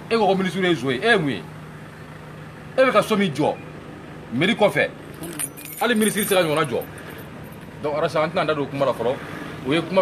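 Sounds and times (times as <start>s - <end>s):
light metallic jingle: 5.1s - 7.7s.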